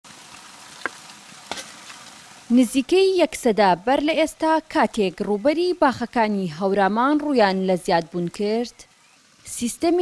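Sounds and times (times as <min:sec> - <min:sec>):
steady background hiss: 0:00.1 - 0:10.0
spade knocking on stones: 0:00.8 - 0:01.8.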